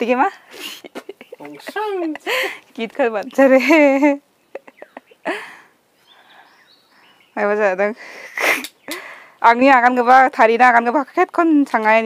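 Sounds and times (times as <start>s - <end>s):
person speaking: 0.0s - 3.8s.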